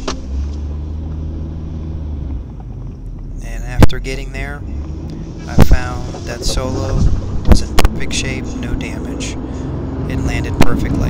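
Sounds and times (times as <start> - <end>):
low motor-like hum: 0.3 - 9.7.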